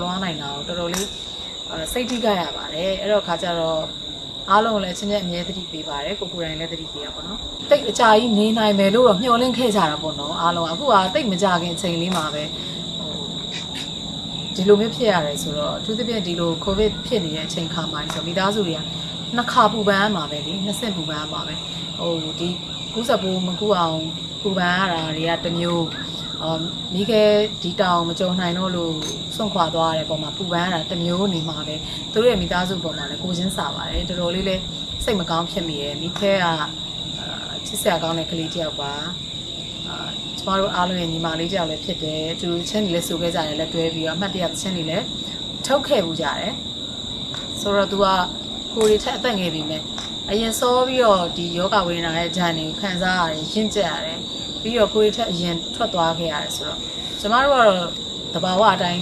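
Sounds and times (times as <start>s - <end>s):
woman talking: 0.0s - 13.9s, 14.5s - 39.2s, 39.8s - 46.6s, 47.5s - 59.0s
woman's voice: 0.0s - 13.9s, 14.5s - 39.2s, 39.8s - 46.6s, 47.4s - 59.0s
insects chirring: 0.0s - 59.0s.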